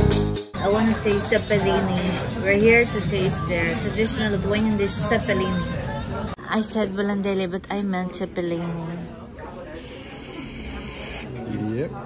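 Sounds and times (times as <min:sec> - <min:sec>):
murmur of voices: 0:00.5 - 0:12.0.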